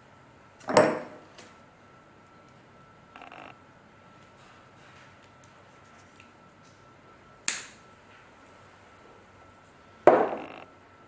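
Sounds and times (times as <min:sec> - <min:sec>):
glass bottle set down on wood: 0:10.1 - 0:10.5.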